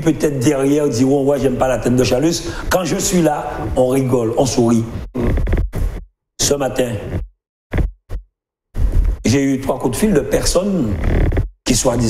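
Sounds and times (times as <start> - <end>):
man speaking: 0.0 - 5.4, 6.4 - 7.2, 11.7 - 12.0.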